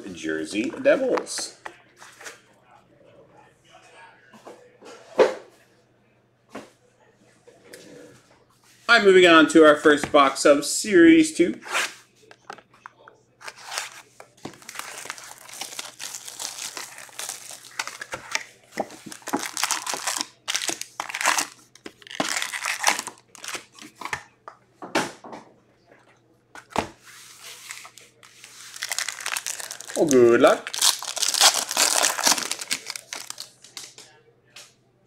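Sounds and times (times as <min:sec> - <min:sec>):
foil packs crinkling: 0:13.5 - 0:23.8, 0:27.6 - 0:33.6
plastic shrink wrap tearing: 0:14.5 - 0:23.8, 0:27.6 - 0:33.6.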